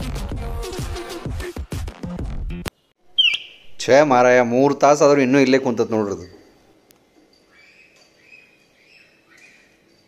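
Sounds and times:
background music with a beat: 0:00.0 - 0:02.7
bird chirp falling in pitch: 0:03.1 - 0:03.8
person speaking: 0:03.6 - 0:06.5.

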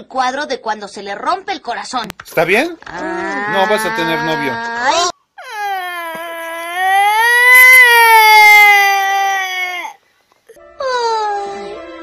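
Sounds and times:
person speaking: 0:02.0 - 0:05.1
little girl crying: 0:02.9 - 0:10.0, 0:10.8 - 0:11.7.

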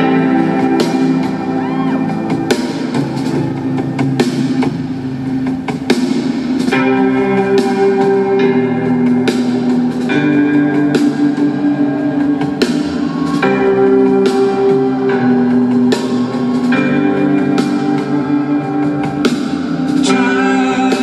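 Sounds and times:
rock band playing: 0:00.0 - 0:21.0.

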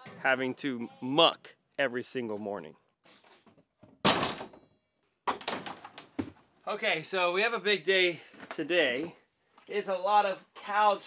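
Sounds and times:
thunk against plastic door: 0:04.0 - 0:04.6, 0:05.3 - 0:06.4.

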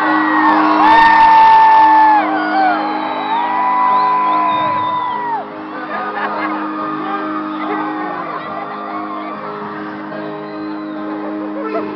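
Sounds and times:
sustained keyboard chords: 0:00.0 - 0:11.9.

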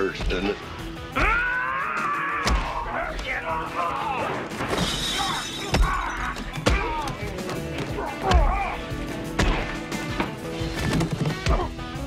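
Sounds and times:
film music score: 0:00.0 - 0:12.0
glass shattering: 0:04.6 - 0:06.9.

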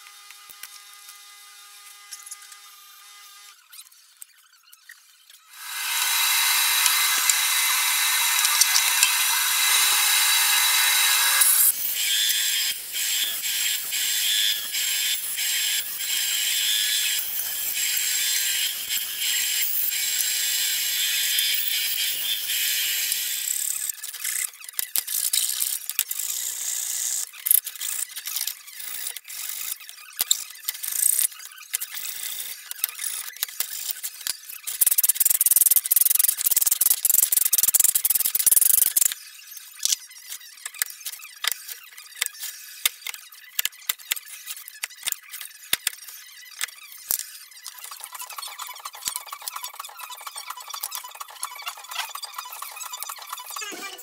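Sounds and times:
hand tool scraping and rasping: 0:05.5 - 0:19.1
bandsaw cutting: 0:05.5 - 0:23.6, 0:47.7 - 0:54.0.

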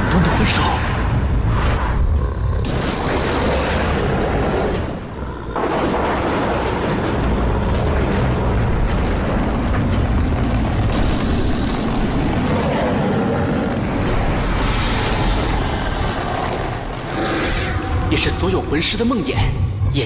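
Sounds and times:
deep rumbling: 0:00.0 - 0:20.0.

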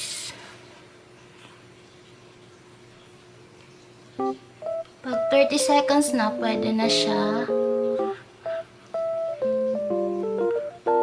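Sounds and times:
faint hum: 0:00.0 - 0:11.0.

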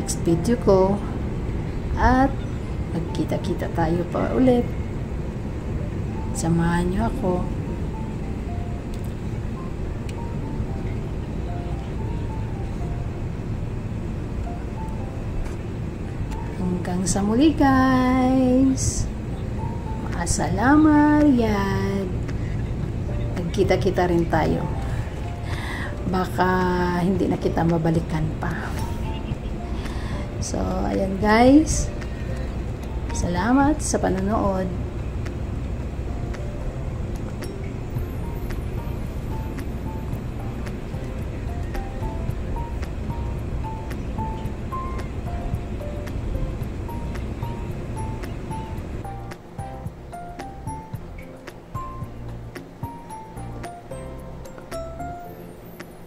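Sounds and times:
car road noise rumble: 0:00.0 - 0:55.0
soft music: 0:00.0 - 0:56.0.

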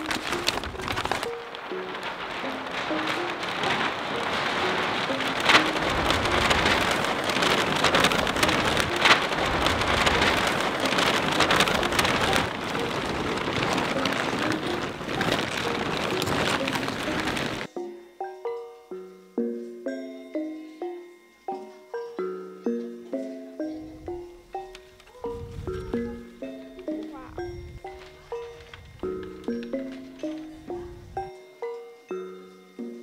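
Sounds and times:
paper crumpling and rustling: 0:00.0 - 0:17.8, 0:24.0 - 0:31.4
soft melodic music: 0:00.0 - 0:33.0.

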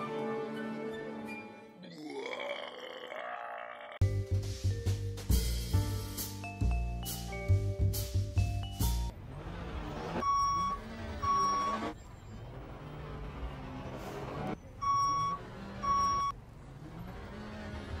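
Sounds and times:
engine noise: 0:09.1 - 0:18.0
reversing alarm beeping: 0:10.2 - 0:12.0, 0:14.8 - 0:16.4.

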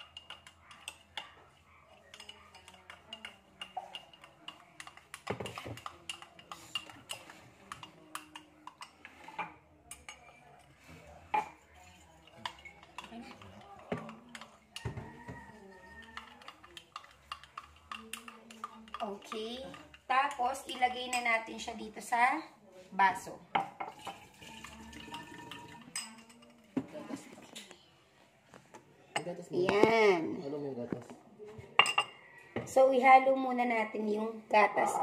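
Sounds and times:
metal spoon clinking in glass: 0:00.0 - 0:09.1, 0:11.4 - 0:20.4, 0:23.8 - 0:26.7, 0:31.8 - 0:32.2.

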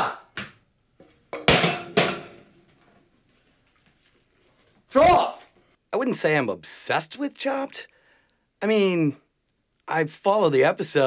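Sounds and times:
metal frying pan knocks: 0:01.3 - 0:02.5.

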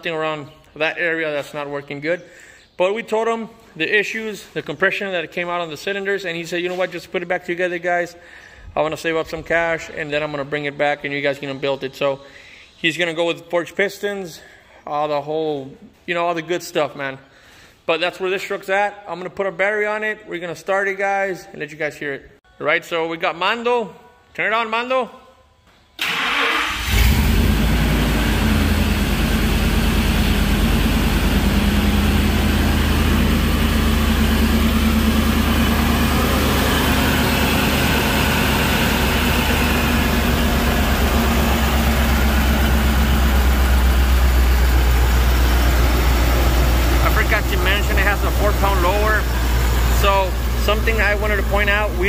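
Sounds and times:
engine cranking and idling: 0:26.0 - 0:52.0.

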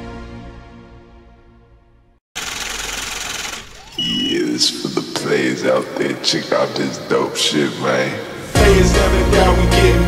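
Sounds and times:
music: 0:00.0 - 0:02.2, 0:08.4 - 0:10.0.

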